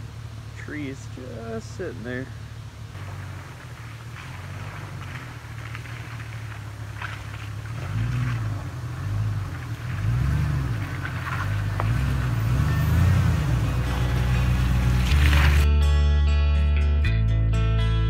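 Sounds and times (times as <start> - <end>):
truck engine revving in mud: 0.0 - 15.7.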